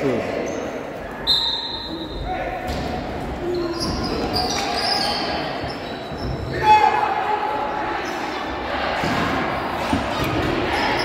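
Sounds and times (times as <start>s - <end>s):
players' voices: 0.0s - 11.0s
sneakers squeaking on wooden floor: 0.4s - 6.6s
loud shout: 6.5s - 7.8s.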